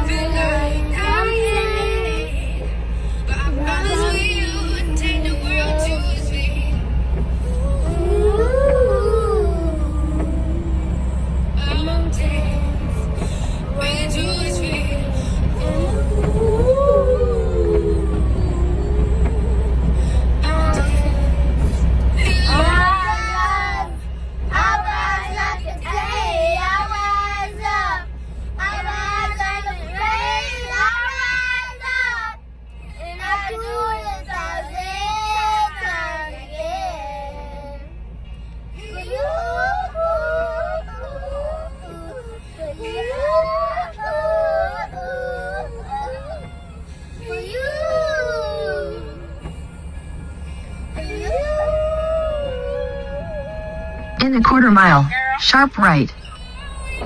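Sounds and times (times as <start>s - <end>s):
vehicle cabin rumble: 0.0s - 57.0s
girls singing: 3.4s - 6.8s.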